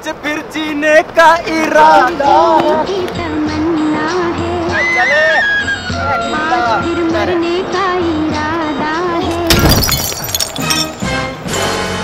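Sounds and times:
glass bottle smashing on asphalt: 9.3 - 11.2
glass pieces clinking and scattering: 9.4 - 11.1.

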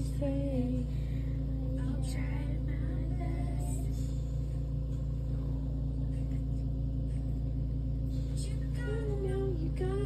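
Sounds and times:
pulsing machine hum: 0.0 - 10.0.

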